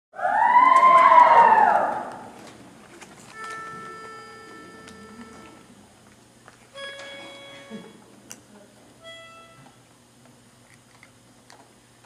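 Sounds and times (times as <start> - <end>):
audience whooping and cheering: 0.2 - 2.4.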